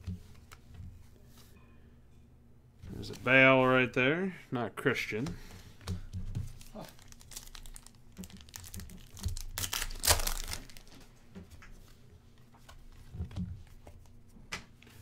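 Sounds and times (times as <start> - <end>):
cards rustling: 5.4 - 11.1.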